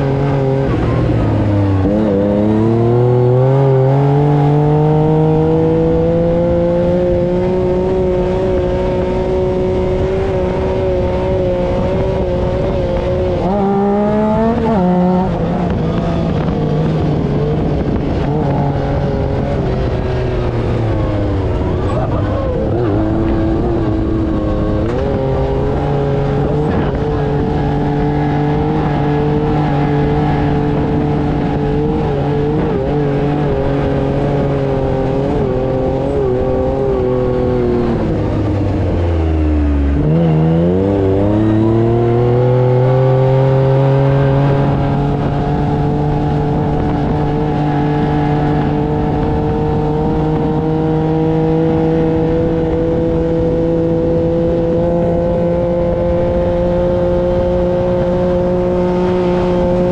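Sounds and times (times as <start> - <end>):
buggy engine revving: 0.0 - 59.9.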